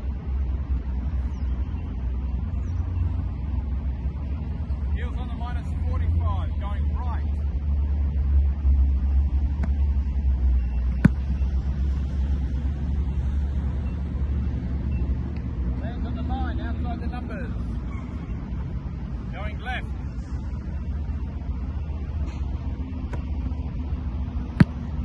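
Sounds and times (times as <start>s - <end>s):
foot kicking a football: 10.9s - 11.4s, 24.5s - 25.0s.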